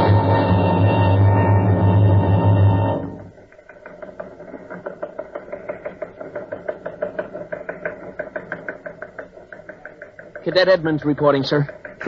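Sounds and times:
fast mechanical clicking: 3.4s - 12.0s.

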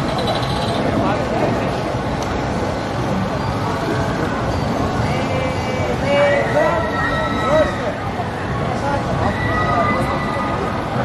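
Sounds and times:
ride machinery running: 0.0s - 4.9s.

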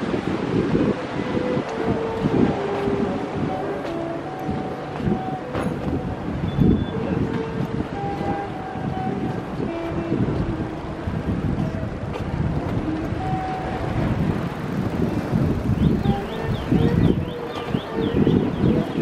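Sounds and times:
low street rumble: 0.0s - 19.0s
wind on microphone: 0.0s - 19.0s.

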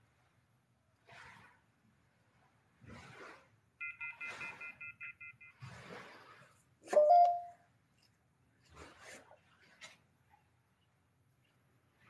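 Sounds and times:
brief loud tone: 6.9s - 7.6s.

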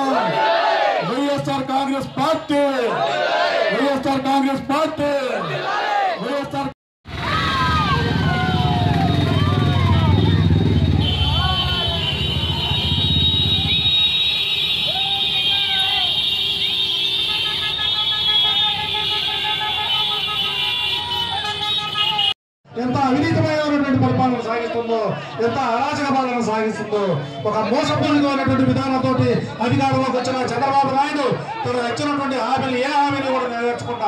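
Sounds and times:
men shouting: 0.0s - 1.2s, 5.2s - 6.2s
motorcycle engines rumbling: 7.1s - 16.2s
vehicle horns honking: 9.3s - 22.4s.

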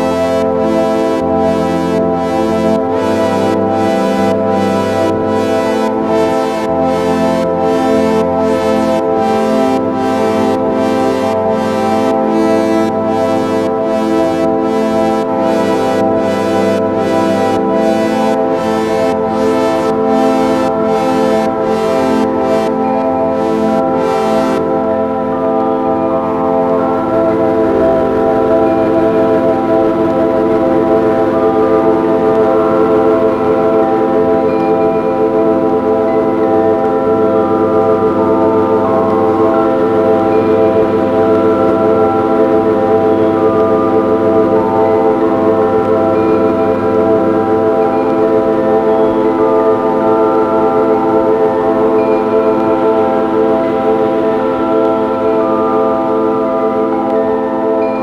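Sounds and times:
ambient drone music: 0.0s - 58.0s.

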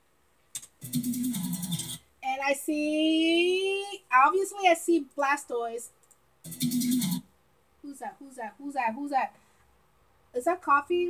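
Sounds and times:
click: 6.0s - 6.2s.

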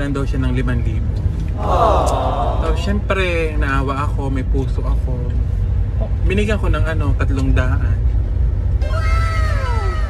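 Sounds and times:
high-pitched meow-like cry: 8.8s - 10.0s.

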